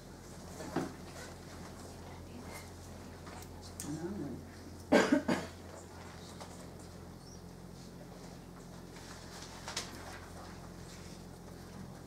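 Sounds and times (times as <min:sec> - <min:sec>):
person coughing: 0:04.9 - 0:05.6.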